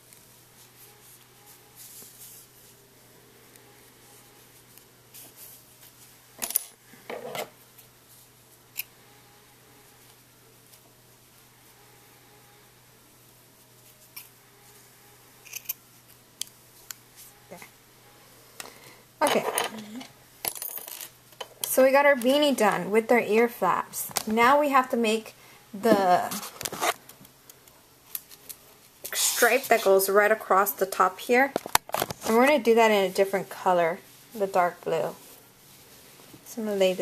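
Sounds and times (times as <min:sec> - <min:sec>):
rustle of handling yarn: 0:00.0 - 0:06.3, 0:07.6 - 0:08.7, 0:09.4 - 0:17.8, 0:28.2 - 0:31.5, 0:32.2 - 0:37.0
woman speaking: 0:19.2 - 0:20.1, 0:21.7 - 0:26.5, 0:29.1 - 0:31.6, 0:32.2 - 0:35.2, 0:36.5 - 0:37.0.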